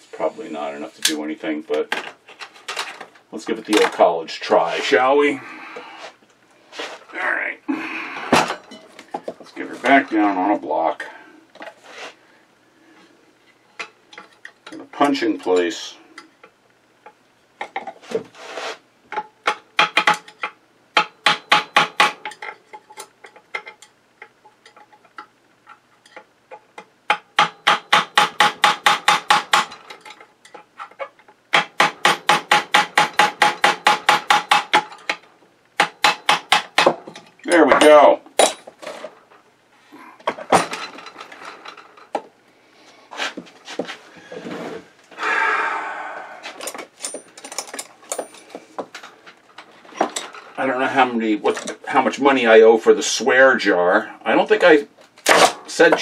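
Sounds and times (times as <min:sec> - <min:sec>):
hammer tapping metal punch: 0:19.5 - 0:22.5, 0:27.1 - 0:30.6, 0:31.5 - 0:35.2.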